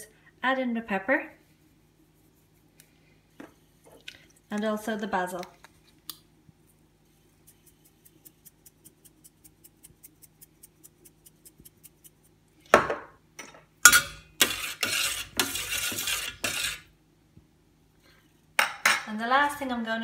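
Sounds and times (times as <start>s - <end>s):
utensil scraping a steel pot: 13.9s - 16.9s.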